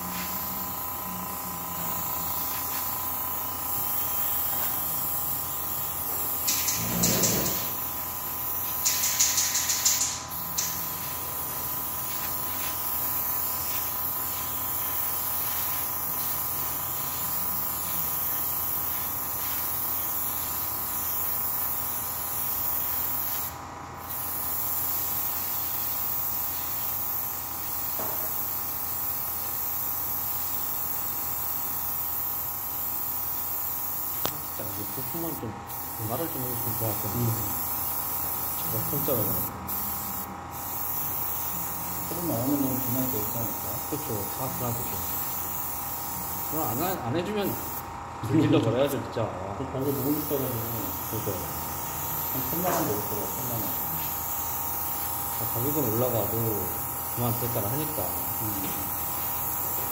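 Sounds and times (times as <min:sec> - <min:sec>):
airbrush spraying hiss: 0:00.0 - 0:47.9, 0:49.8 - 0:59.9.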